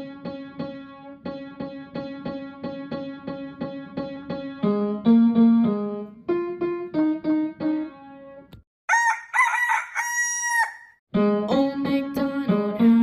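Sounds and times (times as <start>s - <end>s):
keyboard melody: 0.0s - 8.6s, 11.1s - 13.0s
rooster crowing: 8.9s - 11.0s.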